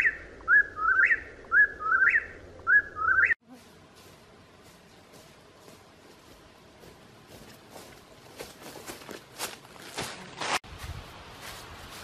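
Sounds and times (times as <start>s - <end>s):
footsteps through undergrowth: 3.4s - 12.0s.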